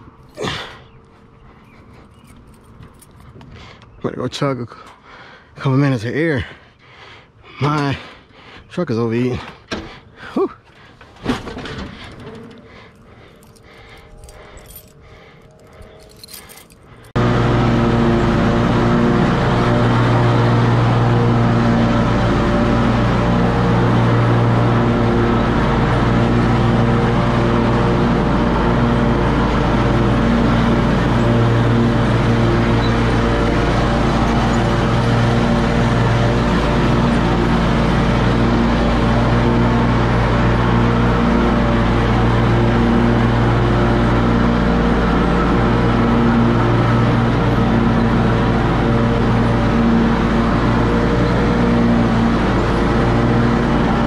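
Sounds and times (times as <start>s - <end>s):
engine running steadily: 0.0s - 54.0s.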